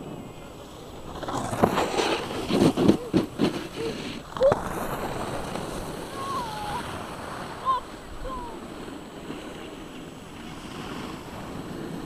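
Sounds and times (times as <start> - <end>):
snowboard scraping on snow: 0.0 - 12.0
wind noise: 0.0 - 12.0
sharp scrapes and knocks: 1.1 - 4.2.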